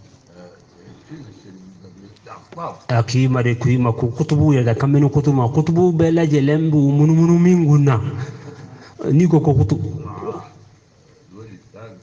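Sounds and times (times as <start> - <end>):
soft voiced sounds: 0.2 - 3.1, 8.9 - 12.0
man speaking: 0.3 - 10.6.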